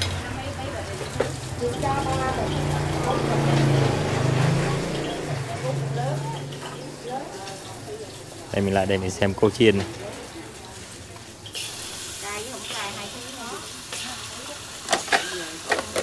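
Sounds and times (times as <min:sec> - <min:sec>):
batter frying hiss: 0:00.0 - 0:16.0
voices: 0:00.0 - 0:16.0.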